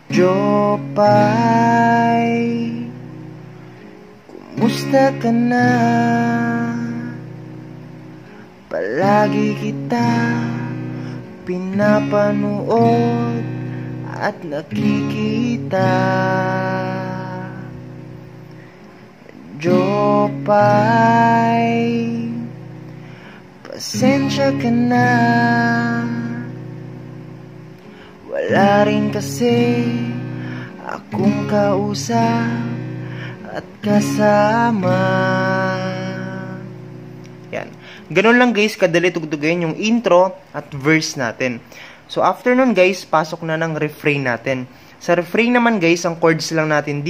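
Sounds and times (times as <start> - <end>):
acoustic guitar chord strum: 0.0 - 47.0.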